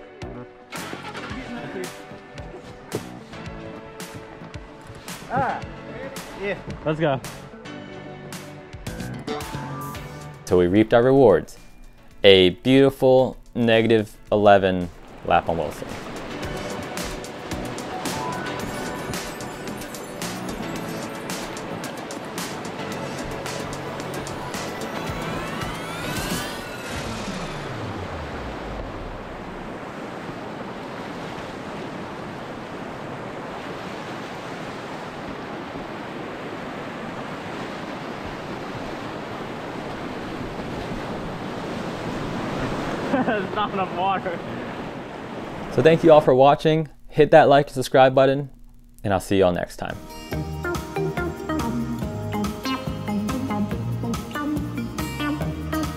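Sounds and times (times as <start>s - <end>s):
background music with percussion: 0.0s - 10.4s, 16.1s - 26.7s, 50.0s - 55.9s
whitewater rushing: 14.9s - 46.1s
rising and falling sweep: 15.8s - 29.7s.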